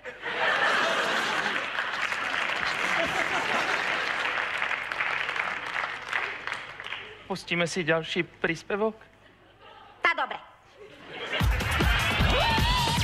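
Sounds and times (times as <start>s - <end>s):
audience applauding: 0.4s - 7.3s, 11.4s - 13.0s.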